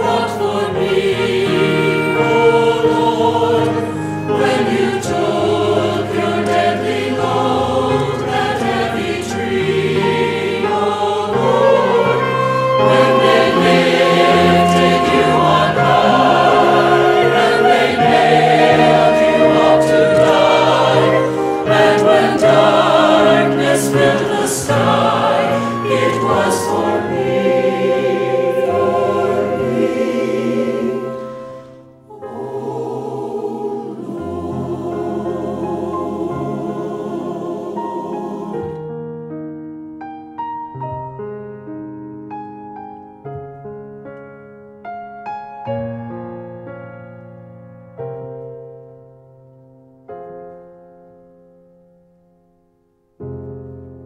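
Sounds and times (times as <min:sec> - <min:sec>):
choir singing a hymn: 0:00.0 - 0:39.1.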